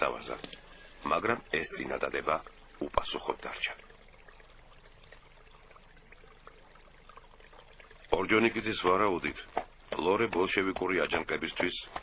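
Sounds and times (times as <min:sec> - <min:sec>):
faint steady hiss: 0:00.0 - 0:12.0
narrator speaking: 0:08.1 - 0:12.0.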